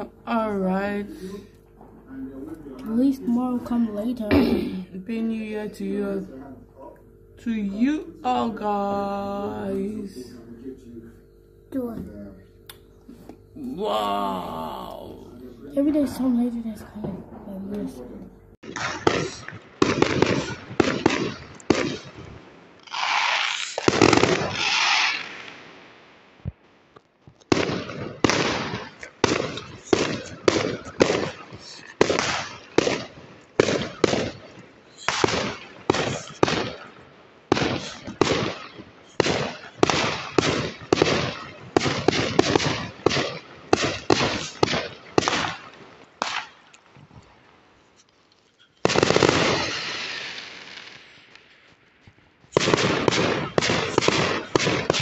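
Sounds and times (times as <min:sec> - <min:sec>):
fireworks bursting: 0:18.6 - 0:47.5, 0:48.6 - 0:55.0.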